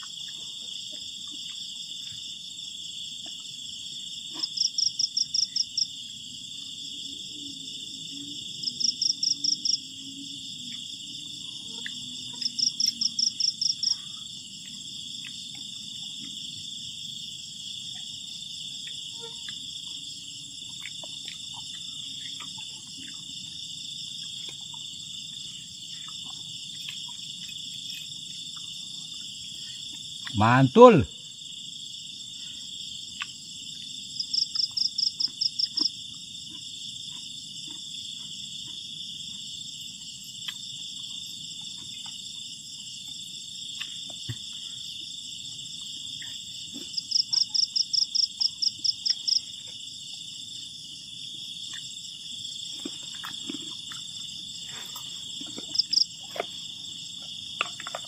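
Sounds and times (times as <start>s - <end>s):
loud insect trill: 0.0s - 58.0s
night insects chirring: 0.0s - 58.0s.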